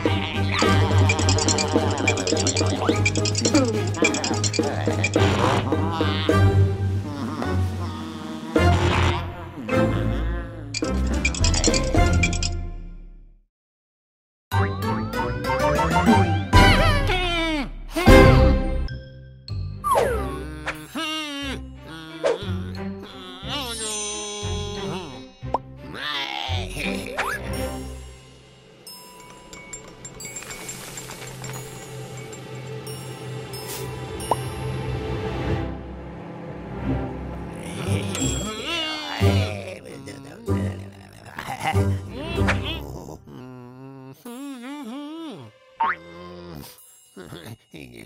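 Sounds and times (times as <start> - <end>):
character's wordless vocalizing: 0.0 - 11.0, 20.0 - 27.6, 37.5 - 48.0
cartoon background music: 0.0 - 13.0, 14.5 - 29.5, 31.0 - 48.0
cartoon boing sound effect: 45.8 - 46.0.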